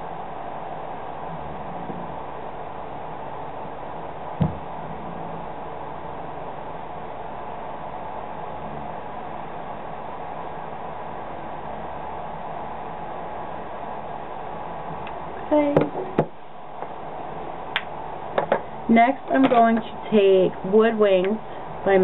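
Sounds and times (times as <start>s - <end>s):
steady background hiss: 0.0s - 22.0s.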